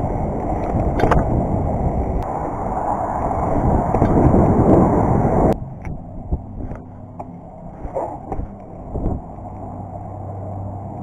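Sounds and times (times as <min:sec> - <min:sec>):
bike tyre rumble: 0:00.0 - 0:11.0
wind on microphone: 0:00.0 - 0:11.0.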